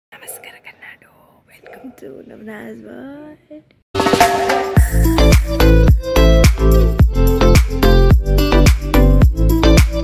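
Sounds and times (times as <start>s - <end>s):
woman whispering: 0.1s - 3.6s
woman speaking: 0.1s - 3.7s.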